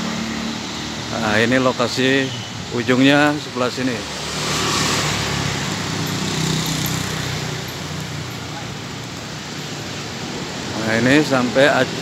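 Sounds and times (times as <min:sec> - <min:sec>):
motorcycle passing: 0:00.0 - 0:12.0
vehicle engine and road noise: 0:00.0 - 0:12.0.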